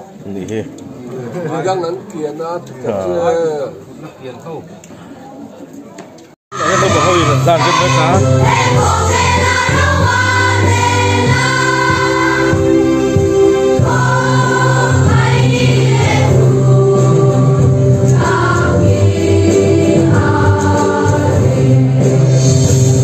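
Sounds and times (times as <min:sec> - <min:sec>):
children's choir singing: 0:06.5 - 0:23.0.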